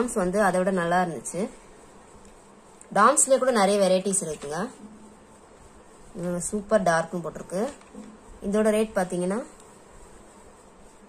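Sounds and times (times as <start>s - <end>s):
speech: 0.0s - 1.6s, 2.9s - 4.8s, 6.1s - 7.8s, 8.4s - 9.6s
faint background hiss: 0.0s - 11.0s.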